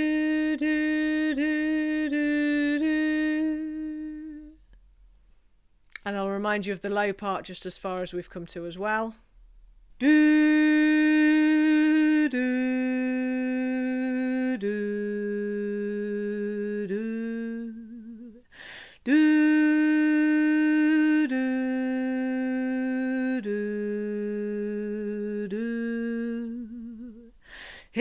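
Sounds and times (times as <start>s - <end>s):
woman singing unaccompanied: 0.0s - 4.7s, 10.0s - 28.0s
woman breathing in: 18.5s - 19.0s, 27.4s - 28.0s.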